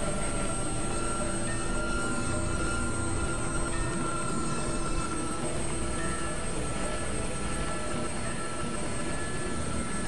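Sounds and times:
synthesizer drone: 0:00.0 - 0:10.0.

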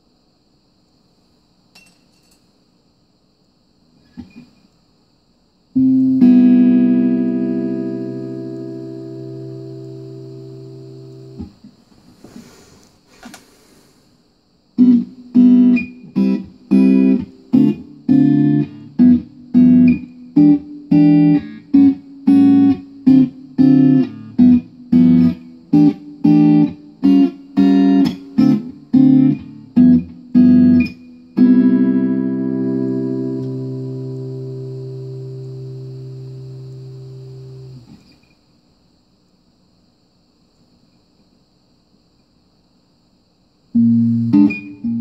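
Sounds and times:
electric guitar chords: 0:05.8 - 0:11.5, 0:14.8 - 0:38.0, 0:43.8 - 0:45.0.

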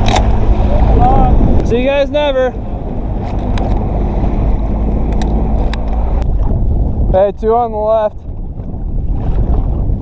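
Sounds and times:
outboard motor running: 0:00.0 - 0:10.0
rumble of wind and water: 0:00.0 - 0:10.0.

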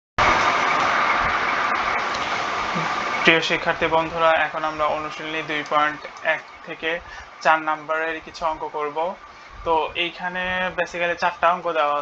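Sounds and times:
steady loud hiss: 0:00.2 - 0:12.0.

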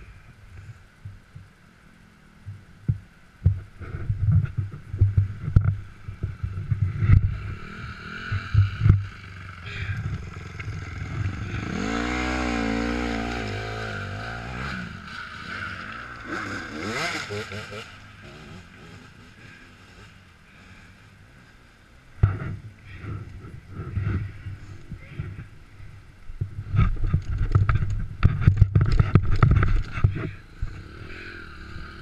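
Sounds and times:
motorcycle engine revving: 0:05.0 - 0:25.4, 0:26.6 - 0:32.0.

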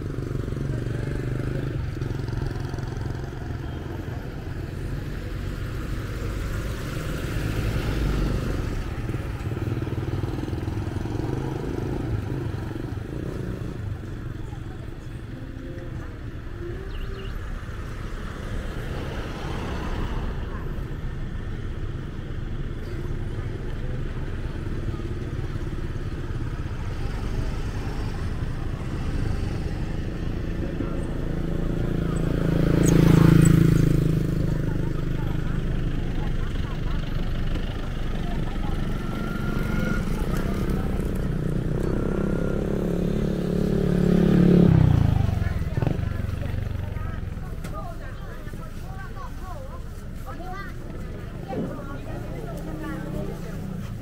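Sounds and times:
people talking: 0:00.0 - 0:21.6, 0:22.2 - 0:54.0
motorbikes passing: 0:00.0 - 0:54.0.

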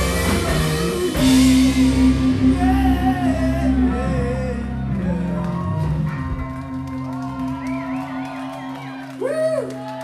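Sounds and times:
rock band chord drone: 0:00.0 - 0:08.3.

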